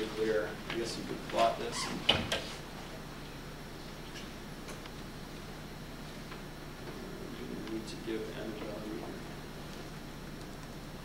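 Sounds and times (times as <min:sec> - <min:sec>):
low room hum: 0:00.0 - 0:11.0
laptop keys typing: 0:10.4 - 0:10.8.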